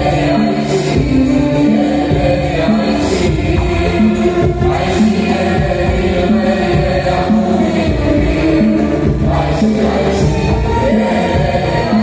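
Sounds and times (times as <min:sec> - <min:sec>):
choir voices: 0:00.0 - 0:12.0
girl and boy singing: 0:00.0 - 0:12.0
hand drum: 0:00.0 - 0:12.0.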